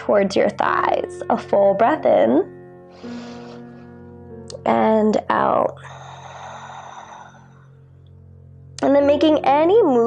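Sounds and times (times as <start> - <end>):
soft background music: 0.0 - 10.0
long breathy exhale: 2.9 - 3.9, 5.8 - 7.8.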